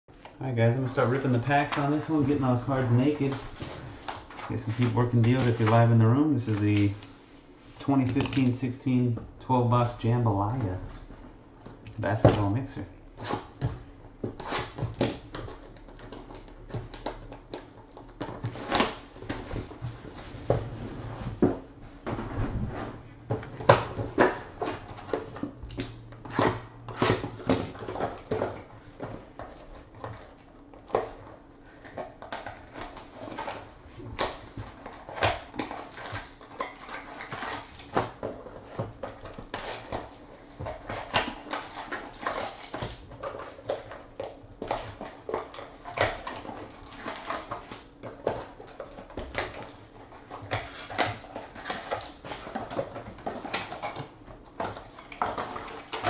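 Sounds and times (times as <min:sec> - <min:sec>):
plastic wrap crinkling: 0:00.6 - 0:08.8
cardboard rustling: 0:00.6 - 0:09.1, 0:12.0 - 0:56.0.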